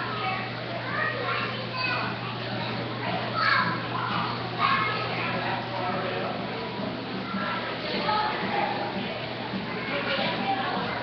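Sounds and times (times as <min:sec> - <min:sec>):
children playing and chattering: 0:00.0 - 0:11.0
steady low hum: 0:00.0 - 0:11.0.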